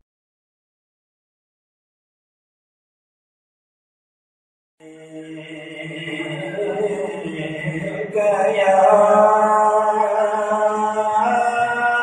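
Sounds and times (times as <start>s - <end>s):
man singing into a microphone: 4.8s - 12.0s.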